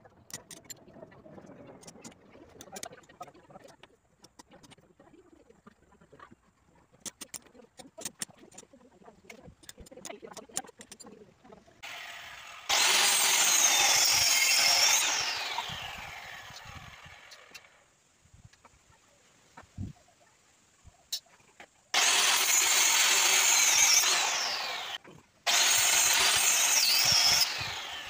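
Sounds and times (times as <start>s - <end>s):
blade carving wood: 11.8s - 17.7s, 22.0s - 28.0s
circular saw cutting wood: 11.8s - 17.8s, 22.0s - 28.0s
saw motor winding down: 11.8s - 17.8s, 22.0s - 28.0s.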